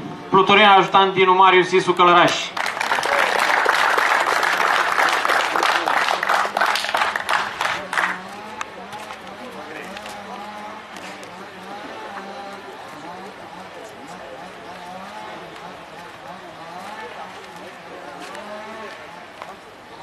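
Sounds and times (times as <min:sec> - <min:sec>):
background talk: 0:00.0 - 0:20.0
audience clapping: 0:02.4 - 0:09.3.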